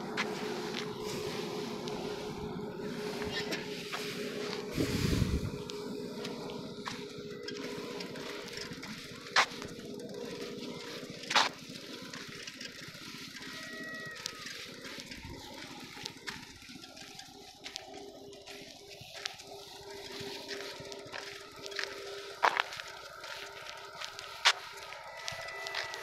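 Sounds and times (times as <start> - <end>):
faint noisy wash: 0.0 - 26.0
steady low hum: 0.0 - 26.0.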